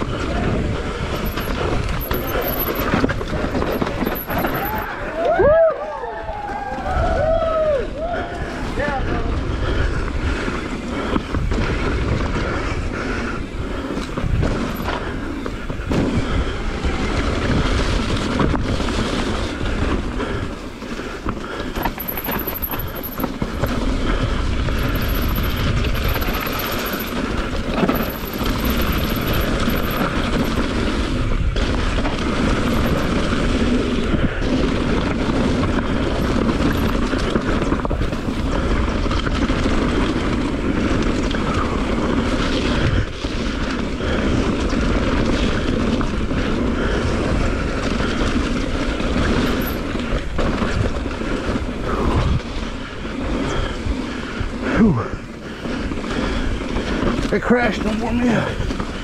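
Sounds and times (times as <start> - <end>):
bike rattling and knocking: 0.0 - 5.1, 9.8 - 59.0
bike tyres rumbling on dirt: 0.0 - 59.0.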